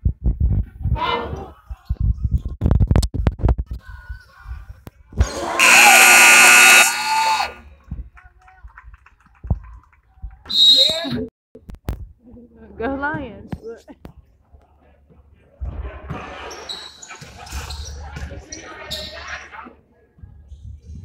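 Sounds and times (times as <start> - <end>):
scoreboard horn blaring: 5.6 - 7.6.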